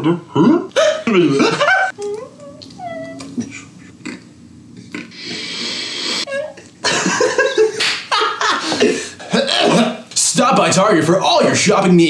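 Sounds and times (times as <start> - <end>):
man's squeaky vocal whines: 0.0 - 3.8, 5.0 - 6.7
breathy hissing exhale: 5.1 - 6.3.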